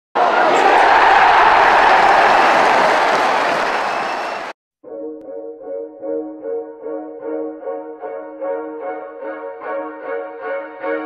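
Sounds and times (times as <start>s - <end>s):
stadium crowd roaring: 0.2s - 4.6s.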